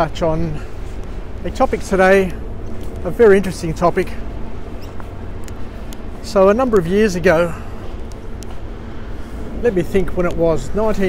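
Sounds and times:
low outdoor rumble: 0.0 - 11.0
faint ticks: 8.0 - 8.6.

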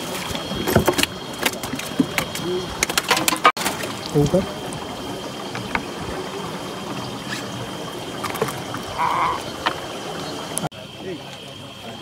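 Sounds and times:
water lapping against canoe hull: 0.0 - 10.7
faint high whine: 0.0 - 12.0.

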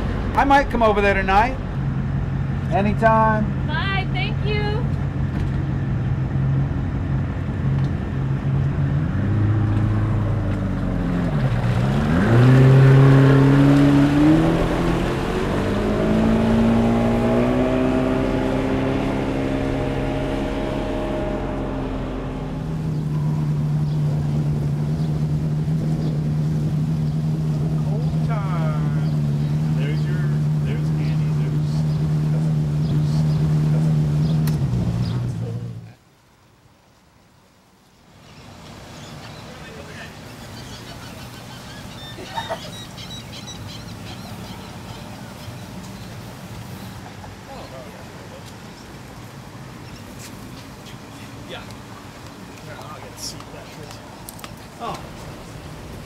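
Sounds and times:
outboard motor running: 9.6 - 35.9.

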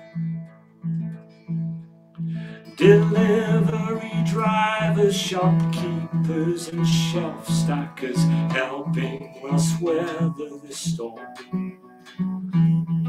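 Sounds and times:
acoustic guitar strumming: 0.0 - 13.0
man singing: 2.6 - 11.6.

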